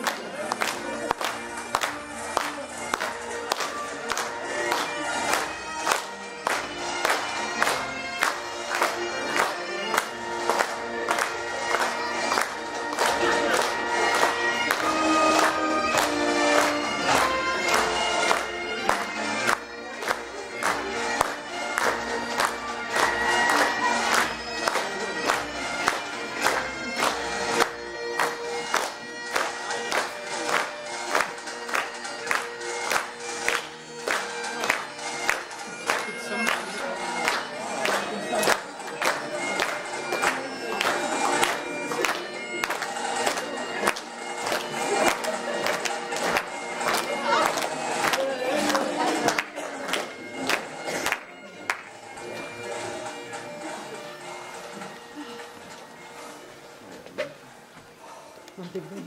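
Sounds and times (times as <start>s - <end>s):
bagpipe melody with drones: 0.0s - 58.4s.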